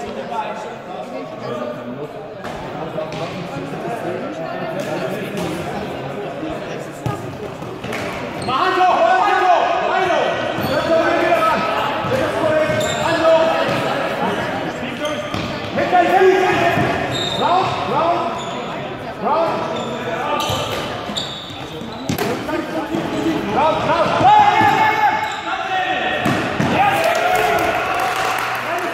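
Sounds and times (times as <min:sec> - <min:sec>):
shoes squeaking on hall floor: 0:07.0 - 0:08.8, 0:10.5 - 0:15.8, 0:16.5 - 0:25.7
players shouting in hall: 0:23.8 - 0:28.9.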